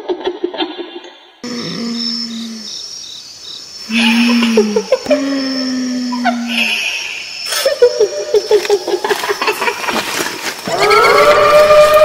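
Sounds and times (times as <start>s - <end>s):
night insects chirring: 1.4s - 12.0s.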